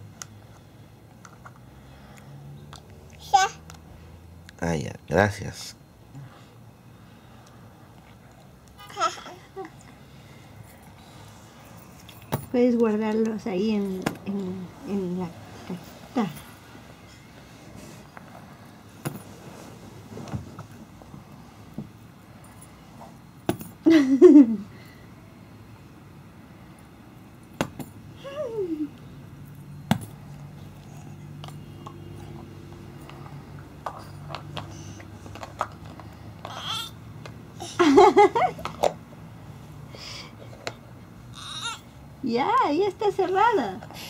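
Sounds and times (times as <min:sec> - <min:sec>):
toddler babbling: 0:03.2 - 0:03.6, 0:08.8 - 0:09.7, 0:36.5 - 0:37.0, 0:41.3 - 0:41.8
toddler vocalizing: 0:08.8 - 0:09.7, 0:36.5 - 0:37.0, 0:41.3 - 0:41.9.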